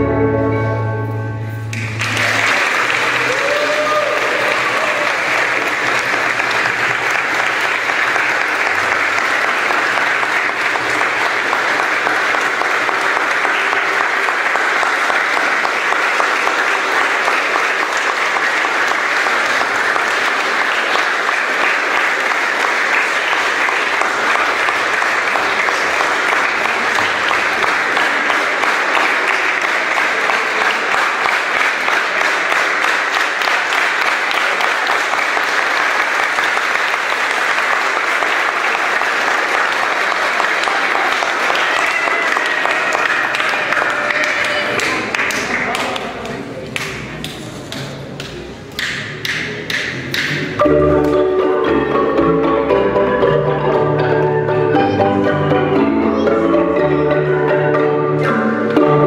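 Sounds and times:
xylophone ensemble: 0.0s - 2.0s, 50.6s - 59.0s
congregation applauding: 1.6s - 52.0s.

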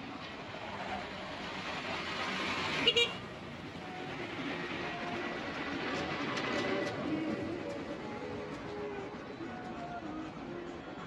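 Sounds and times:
outdoor traffic noise: 0.0s - 11.0s.

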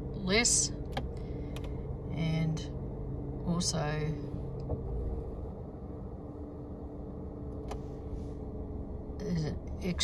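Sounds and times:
engine hum: 0.0s - 10.0s
road rumble: 0.0s - 10.0s.

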